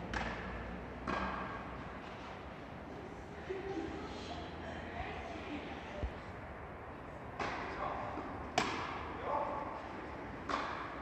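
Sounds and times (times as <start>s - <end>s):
racket striking tennis ball: 0.0s - 1.7s, 7.4s - 9.1s, 10.3s - 11.0s.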